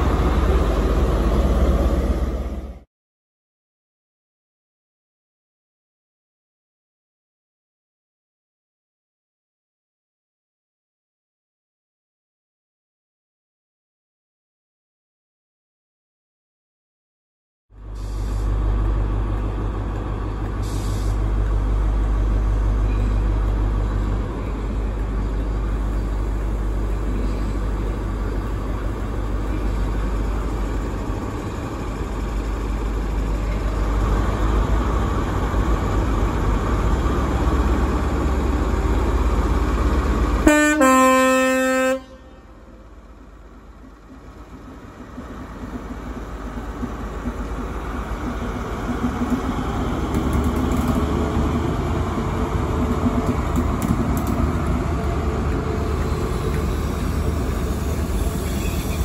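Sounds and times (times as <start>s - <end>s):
diesel engine running: 17.8s - 40.5s
two-note train horn: 40.4s - 42.7s.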